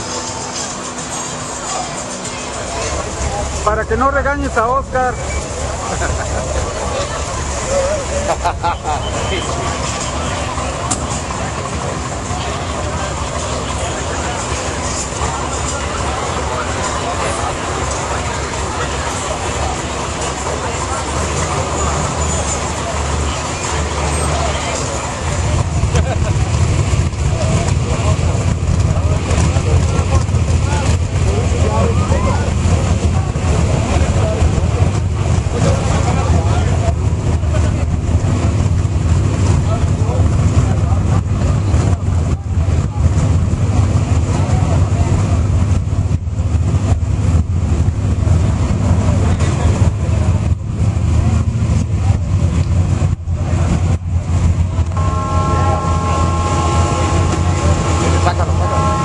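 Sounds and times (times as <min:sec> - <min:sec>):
crowd chatter: 0:00.0 - 0:59.0
truck engine idling: 0:00.0 - 0:59.0.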